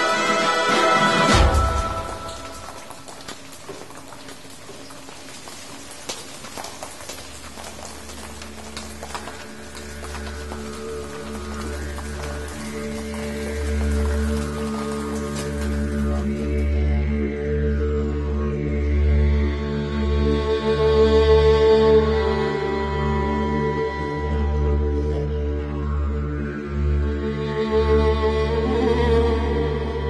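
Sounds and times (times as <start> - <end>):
rain pattering: 0.0 - 17.5
low droning music: 8.0 - 30.0.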